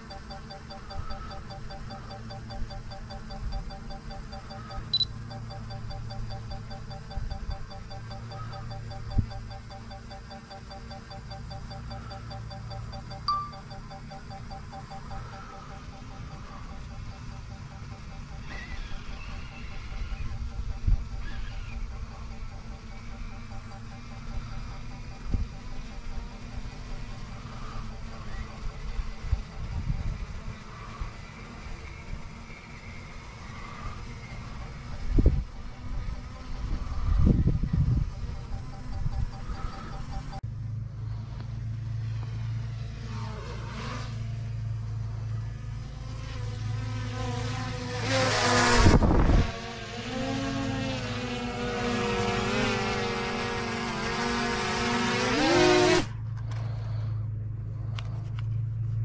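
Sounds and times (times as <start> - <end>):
drone propellers buzzing: 0.0 - 59.0.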